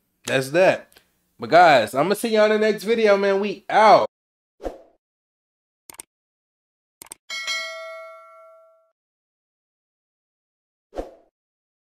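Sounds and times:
notification bell ding: 0:07.3 - 0:08.9.

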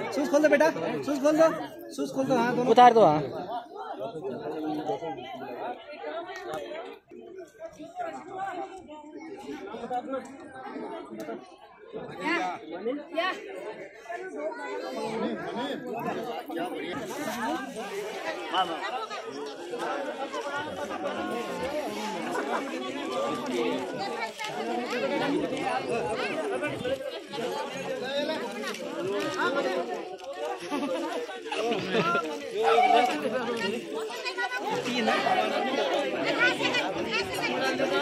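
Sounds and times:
crowd chatter: 0:00.0 - 0:38.0.

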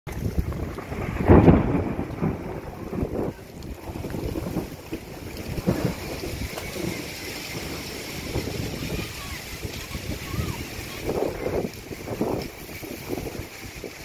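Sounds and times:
storm wind buffeting microphone: 0:00.1 - 0:14.0.

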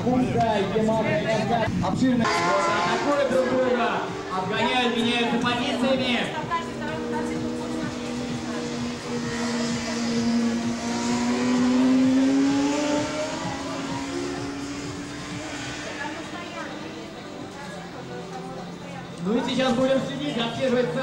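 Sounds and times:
racing motorcycle engines whining: 0:00.0 - 0:21.0
motorcycle passing by: 0:02.3 - 0:21.0.

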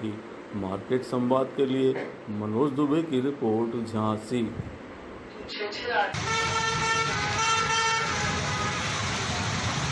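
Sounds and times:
vehicle horn honking: 0:06.2 - 0:09.0
street traffic: 0:06.2 - 0:09.9.

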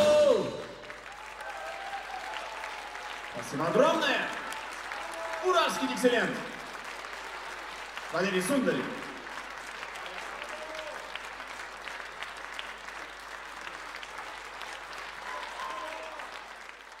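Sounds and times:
audience applauding: 0:00.0 - 0:17.0.

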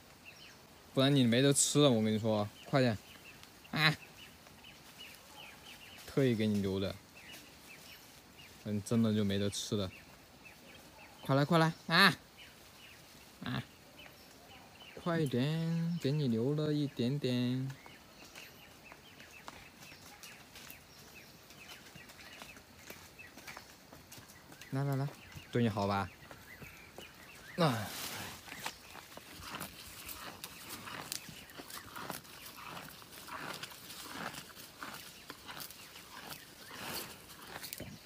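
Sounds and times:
faint outdoor ambience: 0:00.0 - 0:38.0
buffalo chewing and tearing leaves: 0:27.9 - 0:38.0.

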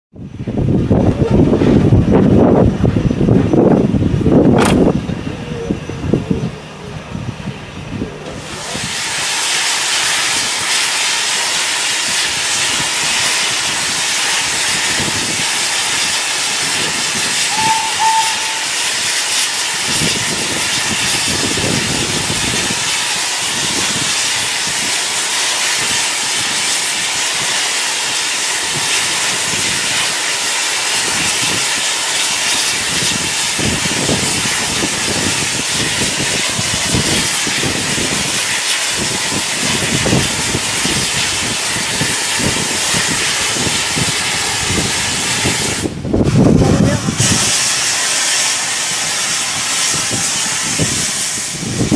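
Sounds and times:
steam locomotive hissing: 0:00.4 - 0:51.9
train whistle toots: 0:17.2 - 0:19.5.

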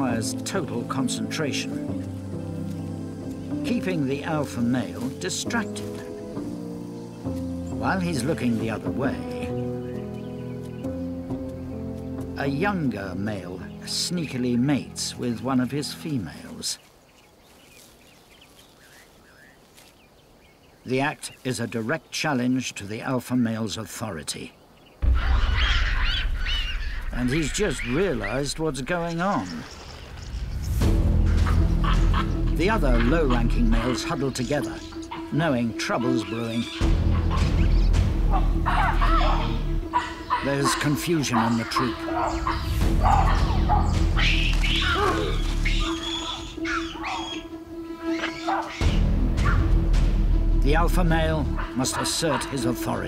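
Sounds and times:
background music with held tone: 0:00.0 - 0:16.7, 0:30.5 - 0:53.0
high-pitched bird calls: 0:24.8 - 0:30.5, 0:31.2 - 0:49.7
baboons barking and screeching: 0:25.0 - 0:29.8, 0:31.2 - 0:50.2, 0:51.0 - 0:53.0.

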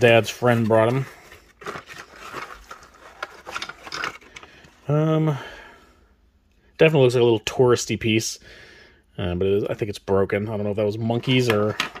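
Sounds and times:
paper and cardboard rustling: 0:00.0 - 0:04.7.

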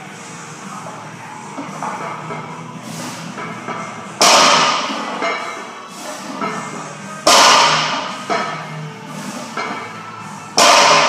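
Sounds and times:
music: 0:00.0 - 0:11.0.

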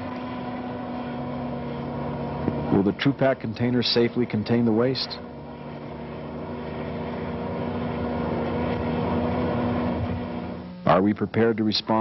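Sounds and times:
vehicle engine passing by: 0:00.0 - 0:10.7.

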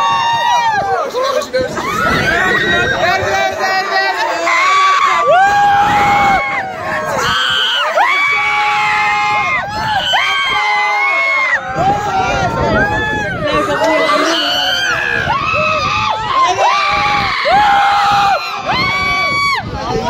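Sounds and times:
riders screaming and whooping: 0:00.0 - 0:20.0.

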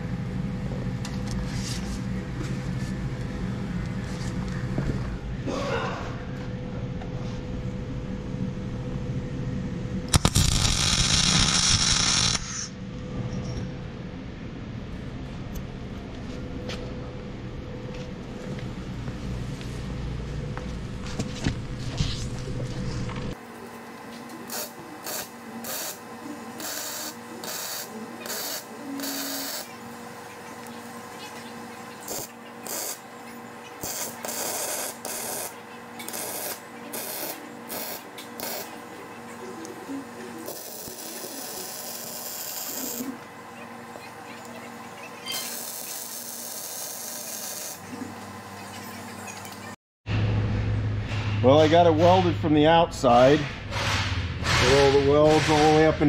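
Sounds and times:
arc welding crackle: 0:10.1 - 0:12.7, 0:23.4 - 0:43.3, 0:44.4 - 0:48.1.

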